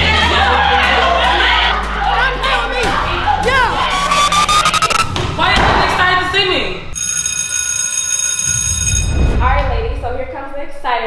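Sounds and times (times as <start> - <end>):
high-pitched electronic tone: 3.7 - 5.1.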